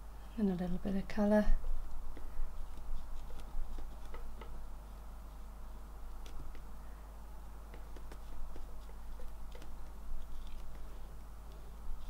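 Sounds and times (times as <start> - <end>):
steady low hum: 0.0 - 12.0
brush dabbing on paper: 1.5 - 6.8, 7.4 - 12.0.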